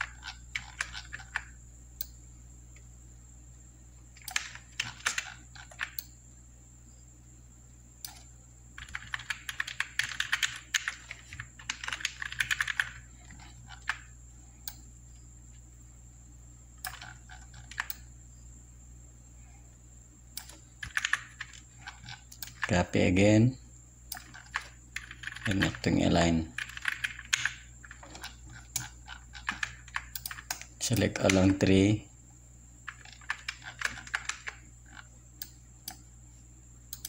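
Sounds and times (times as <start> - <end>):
computer keyboard typing: 0.0 - 1.6, 4.2 - 6.1, 8.1 - 14.8, 16.8 - 18.1, 20.4 - 22.9, 24.2 - 31.7, 32.8 - 35.1
faint steady hum: 0.0 - 37.0.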